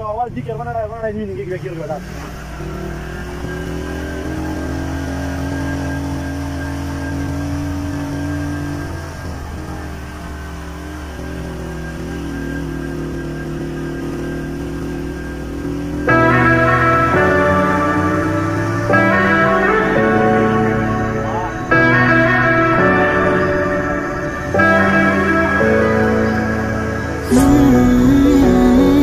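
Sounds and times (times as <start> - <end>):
vehicle engine humming: 0.0 - 29.0.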